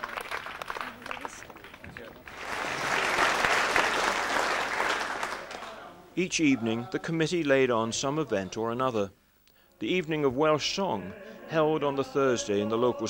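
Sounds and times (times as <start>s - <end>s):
crowd applauding: 0.0s - 5.9s.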